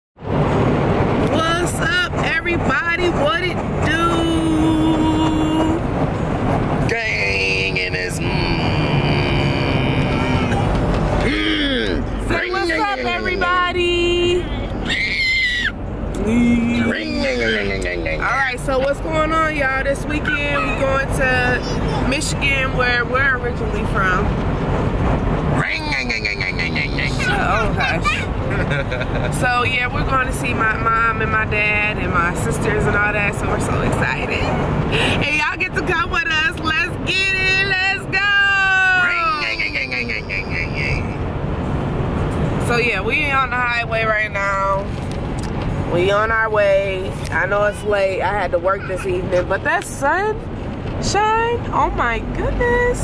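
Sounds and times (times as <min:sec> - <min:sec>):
car road noise rumble: 0:00.2 - 0:53.0
voices calling: 0:06.8 - 0:24.3, 0:25.5 - 0:41.7, 0:42.6 - 0:53.0
high wavering voice: 0:20.1 - 0:22.1, 0:25.8 - 0:28.4.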